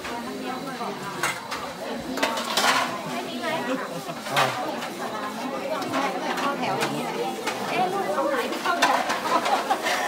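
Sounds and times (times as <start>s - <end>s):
crowd chatter: 0.0s - 10.0s
metal trays and spoons clinking: 0.1s - 10.0s.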